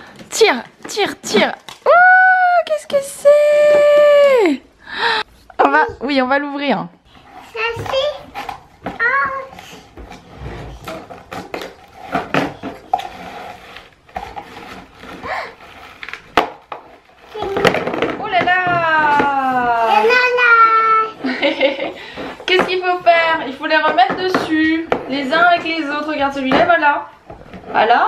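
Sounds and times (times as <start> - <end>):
plastic toy pieces knocking on table: 16.3 - 19.3.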